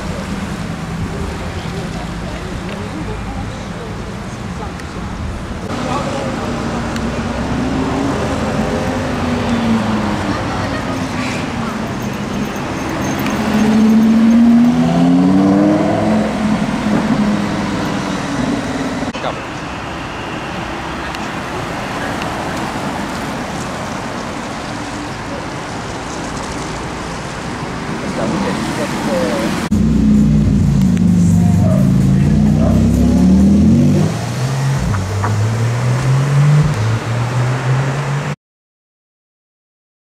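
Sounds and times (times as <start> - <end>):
street traffic: 0.0 - 38.4
sports car engine pulling away: 12.9 - 18.7, 29.4 - 38.3.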